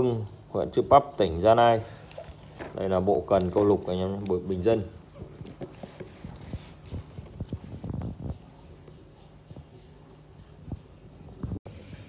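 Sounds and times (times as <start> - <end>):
plastic rustle: 2.0 - 8.3.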